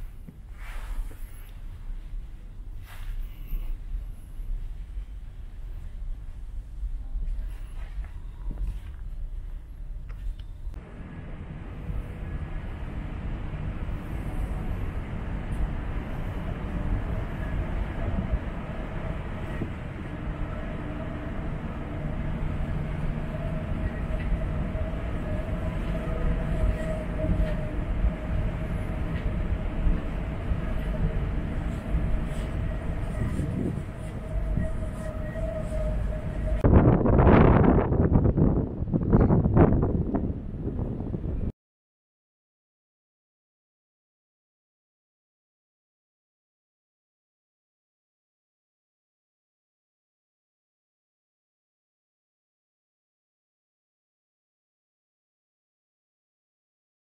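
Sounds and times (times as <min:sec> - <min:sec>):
mechanical hum: 0:00.0 - 0:41.5
wind roaring: 0:03.4 - 0:41.5
wind gusts buffeting microphone: 0:10.8 - 0:41.5.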